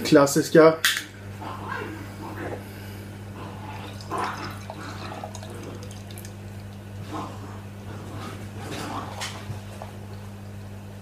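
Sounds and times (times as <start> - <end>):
beer pouring into glass: 3.7 - 6.9.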